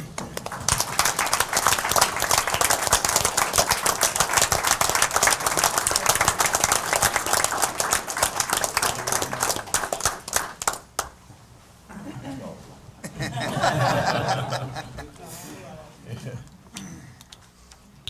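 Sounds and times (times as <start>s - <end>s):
audience applauding: 0.0s - 11.1s.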